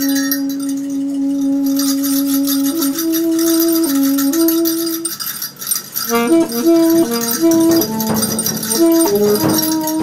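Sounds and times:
metallic percussion shimmer: 0.0s - 10.0s
alto saxophone long note: 6.1s - 10.0s.

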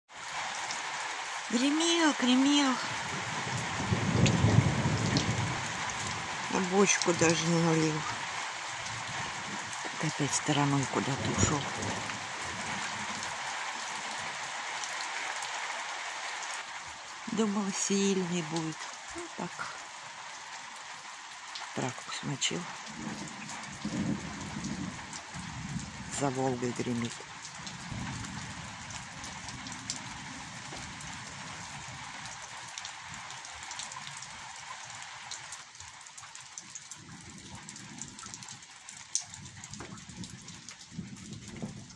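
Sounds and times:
light rain on plants: 0.1s - 41.9s
distant thunder rumble: 2.8s - 14.4s, 22.8s - 32.1s.

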